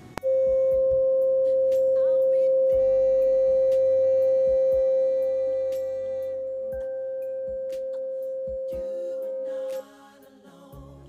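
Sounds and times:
fainter higher tones: 0:00.0 - 0:10.2
steady electronic pure tone: 0:00.0 - 0:10.4.

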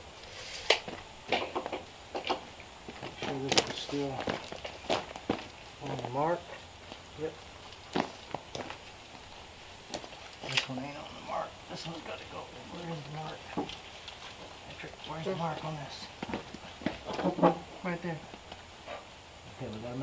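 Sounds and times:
wooden knocks and clatter: 0:01.3 - 0:05.5, 0:16.2 - 0:17.7.

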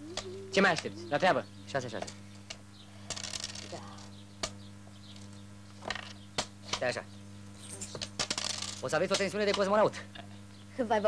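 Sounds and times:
low soundtrack hum: 0:00.0 - 0:02.9
dice and checkers clattering on wood: 0:03.1 - 0:03.8, 0:07.8 - 0:09.6.

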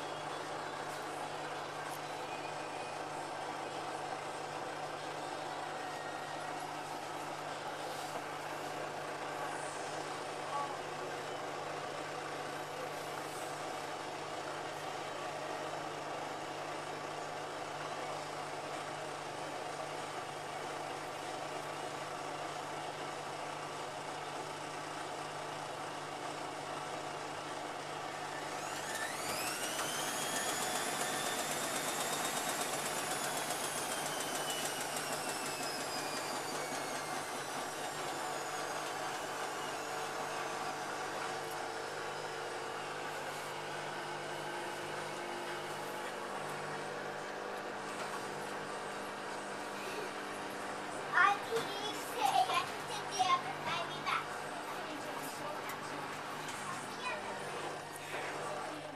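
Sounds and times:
washing machine spinning: 0:13.6 - 0:54.7
washing machine drum whine: 0:28.6 - 0:43.1.

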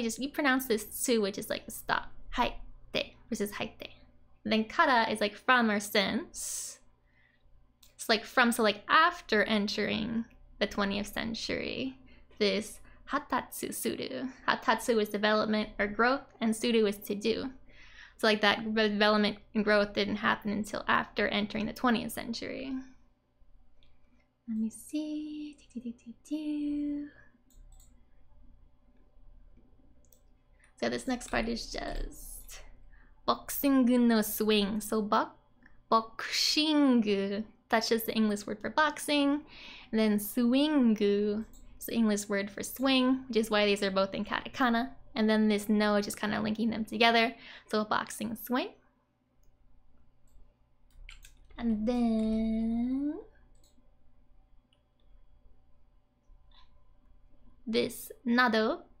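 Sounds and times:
woman speaking: 0:00.0 - 0:06.8, 0:07.9 - 0:17.6, 0:18.2 - 0:22.9, 0:24.5 - 0:27.2, 0:30.8 - 0:48.8, 0:51.5 - 0:53.3, 0:57.7 - 0:59.0
low room hum: 0:00.0 - 0:59.0
computer mouse clicks: 0:27.4 - 0:28.1, 0:29.0 - 0:32.5, 0:41.4 - 0:41.8, 0:50.2 - 0:51.6, 0:53.5 - 0:53.9
faint computer clicks: 0:27.5 - 0:28.0, 0:53.5 - 0:53.8.

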